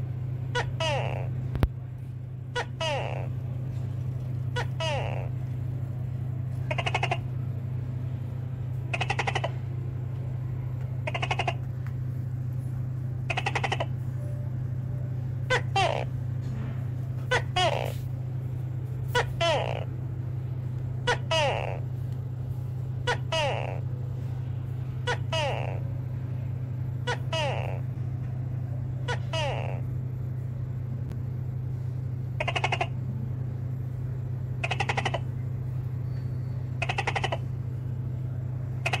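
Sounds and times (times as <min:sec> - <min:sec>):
low steady hum: 0:00.0 - 0:39.0
gecko rattling calls: 0:32.4 - 0:32.9, 0:36.8 - 0:37.4.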